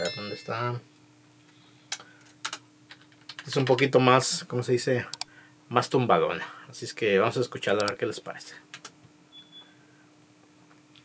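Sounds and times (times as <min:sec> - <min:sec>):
faint steady hum: 0:00.0 - 0:11.0
computer clicks: 0:07.8 - 0:08.0.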